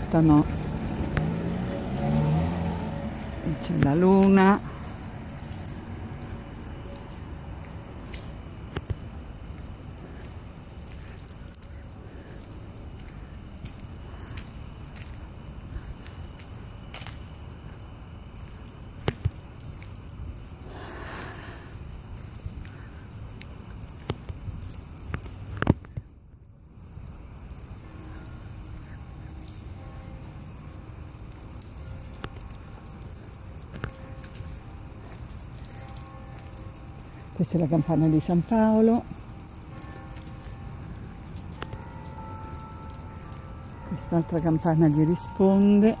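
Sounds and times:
distant church bells ringing: 0:00.0 - 0:19.0, 0:26.8 - 0:46.0
street background noise: 0:00.0 - 0:46.0.

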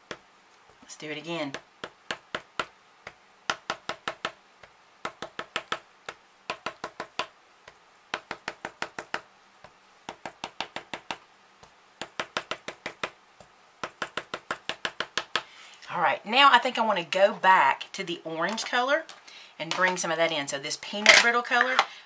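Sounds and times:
pencil eraser tapping paper: 0:00.0 - 0:00.2, 0:01.5 - 0:15.5.

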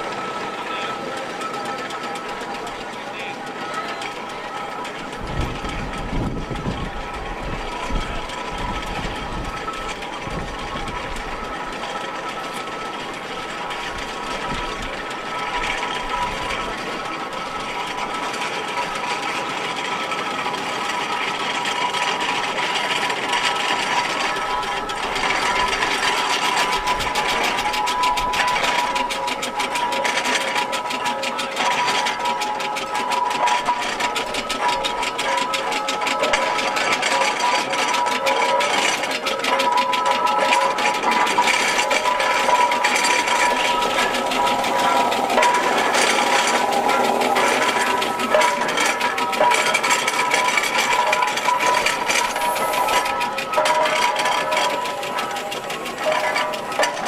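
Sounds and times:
steam engine mechanical clatter: 0:00.0 - 0:57.0.

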